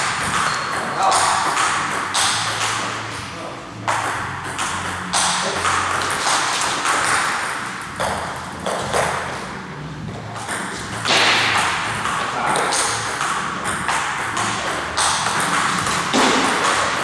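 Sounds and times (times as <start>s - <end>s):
table tennis ball clicking: 3.8s - 9.2s, 10.4s - 17.0s.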